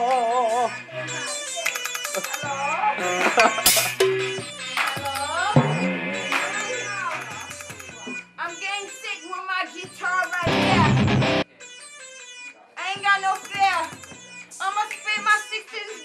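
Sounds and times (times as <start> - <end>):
person rapping and shouting: 0.0 - 16.0.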